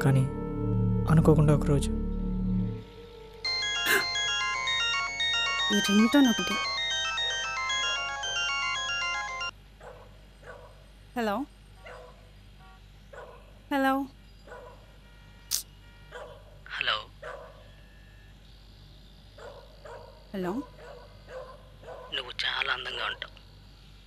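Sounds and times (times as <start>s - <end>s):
mobile phone ringtone melody: 3.0s - 9.6s.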